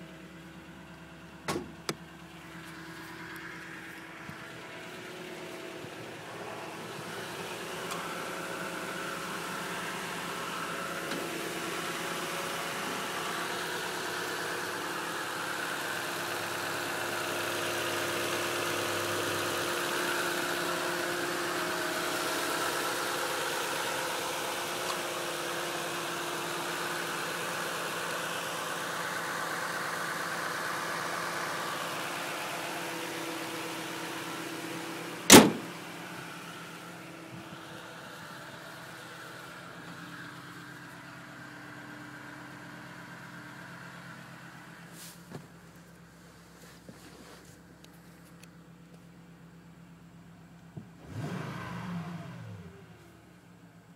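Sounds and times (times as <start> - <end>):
pickup engine idling: 0.0 - 51.3
sharp loud knock: 35.3 - 35.7.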